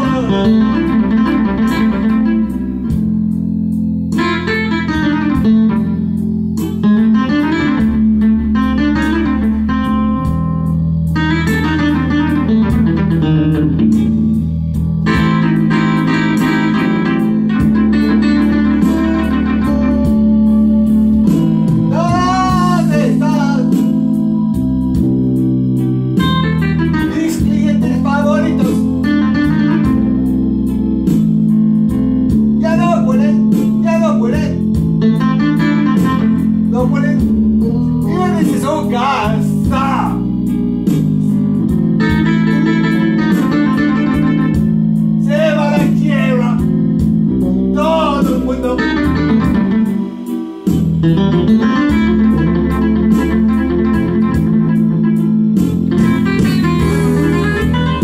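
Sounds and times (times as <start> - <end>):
keyboard backing accompaniment: 0.0 - 58.0
keyboard blues lead line: 0.0 - 58.0.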